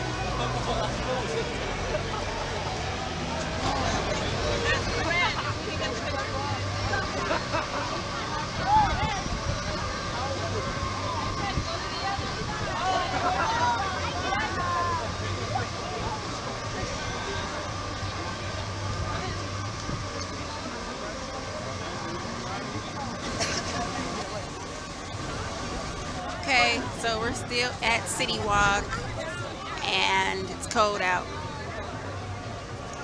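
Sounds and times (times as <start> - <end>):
steady hum: 0.0 - 32.9
chatter of passers-by: 0.0 - 33.0.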